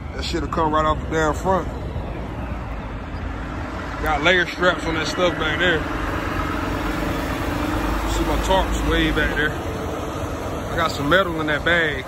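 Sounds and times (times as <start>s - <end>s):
diesel truck engine idling: 3.4s - 12.0s.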